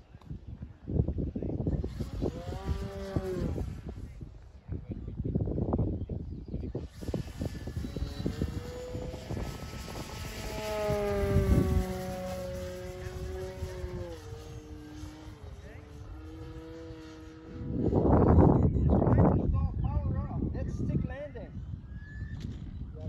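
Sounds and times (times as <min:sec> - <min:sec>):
model airplane motor whine: 0:01.6 - 0:04.2, 0:06.7 - 0:18.6.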